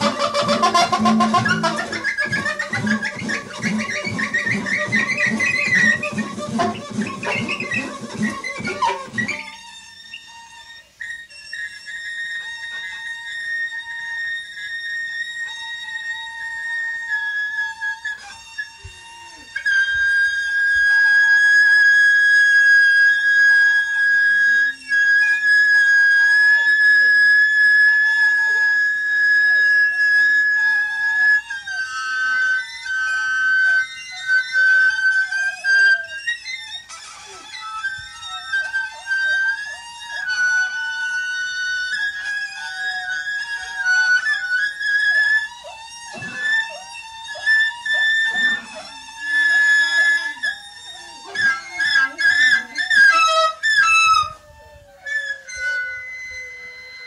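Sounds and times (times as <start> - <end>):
saxophone high held notes: 0.0 - 54.4
string instrument: 0.0 - 57.0.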